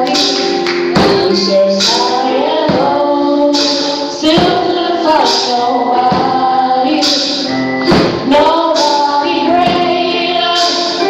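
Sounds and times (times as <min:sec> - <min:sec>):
gospel singing over music: 0:00.0 - 0:11.0.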